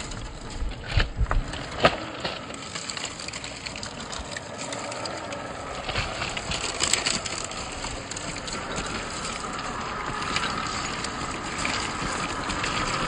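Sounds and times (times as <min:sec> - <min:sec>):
stones crunching under tyres: 0:00.0 - 0:13.0.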